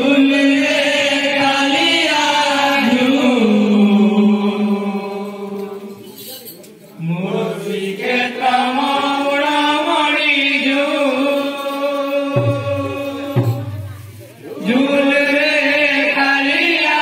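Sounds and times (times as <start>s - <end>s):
men chanting together: 7.1s - 13.6s, 14.6s - 17.0s.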